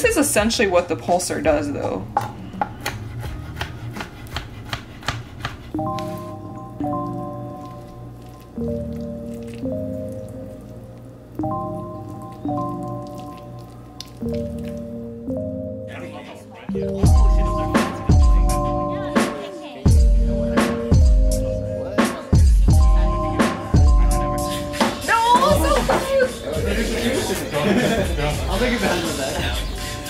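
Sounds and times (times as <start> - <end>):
knife chopping on cutting board: 2.2 - 6.2
background music with sustained chords: 5.7 - 30.0.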